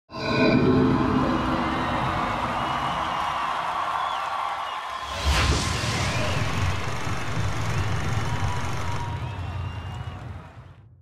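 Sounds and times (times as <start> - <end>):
concert crowd cheering and shouting: 0.3 - 10.8.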